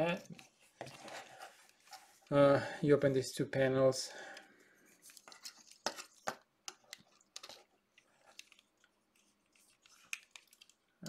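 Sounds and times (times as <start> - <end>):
small plastic clicks and scraping: 4.4 - 10.9.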